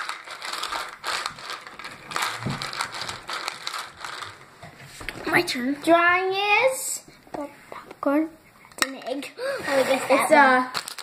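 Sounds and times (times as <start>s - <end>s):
hands rummaging through jelly beans: 0.0s - 5.5s, 9.6s - 11.0s.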